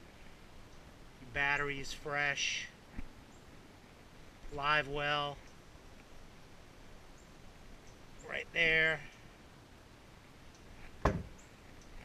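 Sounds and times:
sharp knock: 11.0s - 11.3s.

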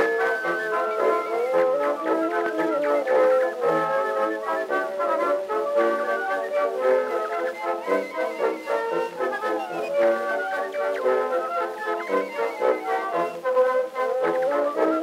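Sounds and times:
thin orchestral music recording: 0.0s - 15.0s.

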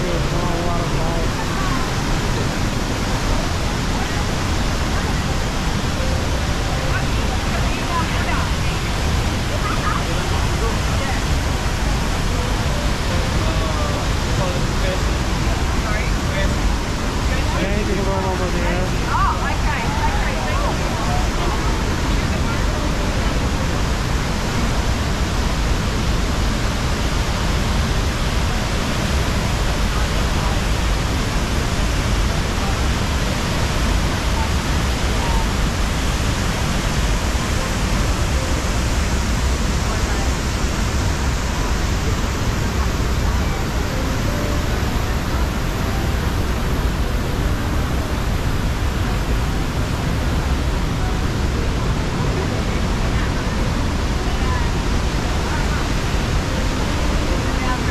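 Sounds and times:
river rapids flowing: 0.0s - 57.9s
waterfall rushing: 0.0s - 57.9s.

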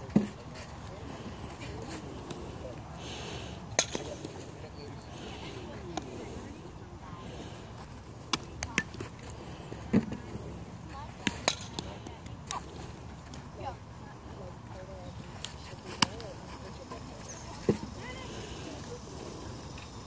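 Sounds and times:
faint distant voices: 0.0s - 20.0s
outdoor background noise: 0.0s - 20.0s
softball bat and glove clicks: 11.2s - 12.6s.

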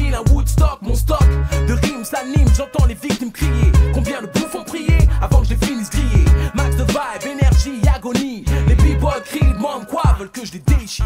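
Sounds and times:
rapping over a beat: 0.0s - 11.0s
heavy kick drums: 0.1s - 1.4s, 2.4s - 3.0s, 3.6s - 4.0s, 4.9s - 6.5s, 7.4s - 8.1s, 8.7s - 10.9s.

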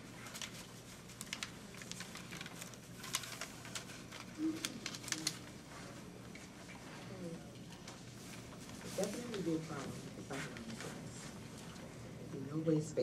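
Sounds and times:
pens and paper rustling: 0.0s - 12.0s.

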